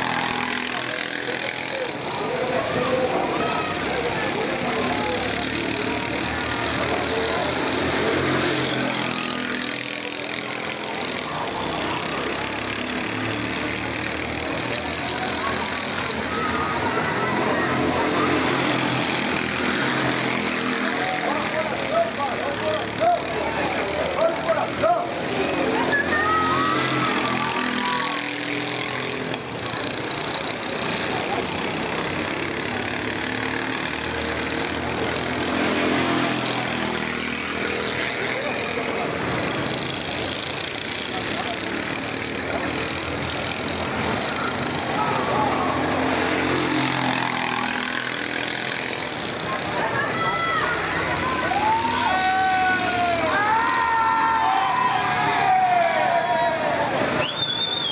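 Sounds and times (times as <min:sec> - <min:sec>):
kart engines revving: 0:00.0 - 0:57.9
people's voices: 0:00.0 - 0:57.9.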